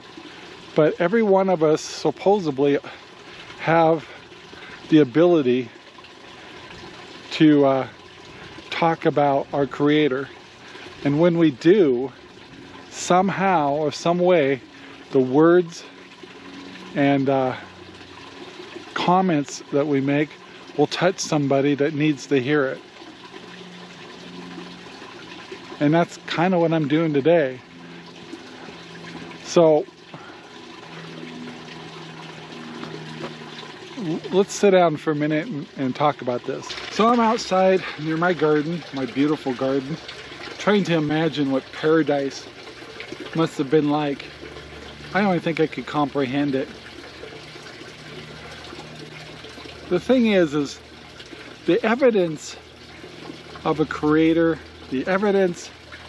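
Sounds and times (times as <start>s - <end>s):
running water hiss: 0.0s - 56.0s.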